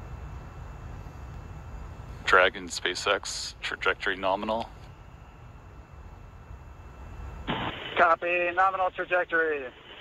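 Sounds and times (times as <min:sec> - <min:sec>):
low steady rumble: 0:00.0 - 0:10.0
radio static burst: 0:07.4 - 0:10.0
voice call over radio: 0:07.5 - 0:10.0.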